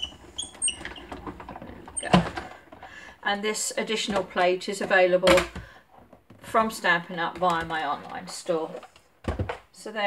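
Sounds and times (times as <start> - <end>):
die-cutting machine squeaking: 0.0 - 1.1.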